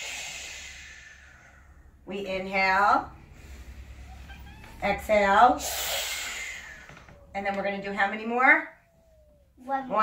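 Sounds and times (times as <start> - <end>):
forceful breath blown out: 0.0 - 2.0, 5.6 - 7.0.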